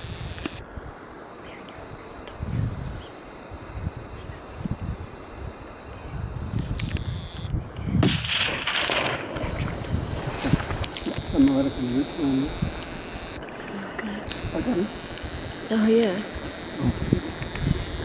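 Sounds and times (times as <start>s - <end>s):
wind buffeting microphone: 1.7s - 18.0s.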